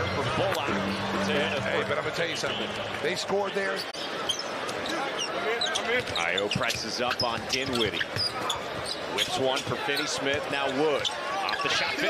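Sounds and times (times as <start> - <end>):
arena crowd noise: 0.0 - 12.0
sneakers squeaking on floor: 3.8 - 11.9.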